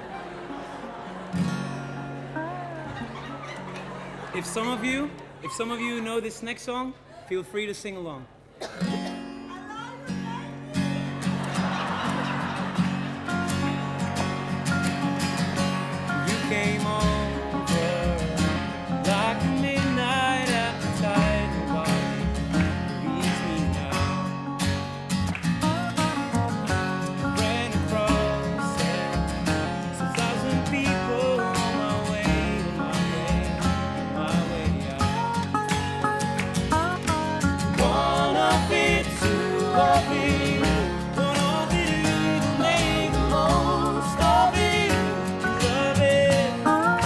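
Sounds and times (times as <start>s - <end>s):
acoustic guitar: 0.0s - 7.8s, 8.4s - 47.0s
low bass line: 25.6s - 47.0s.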